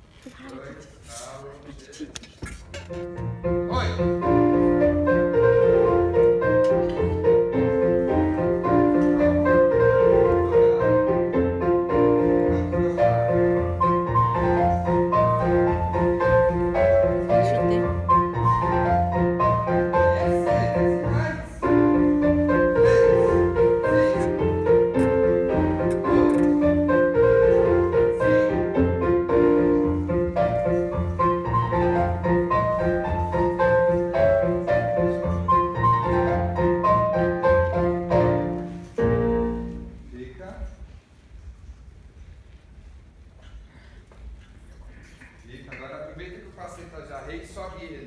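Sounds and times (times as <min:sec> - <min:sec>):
classical piano music: 0:02.8 - 0:40.1.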